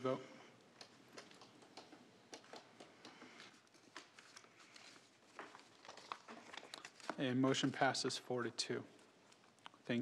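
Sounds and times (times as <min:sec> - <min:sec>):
faint small clicks and rustles: 0:00.6 - 0:07.9.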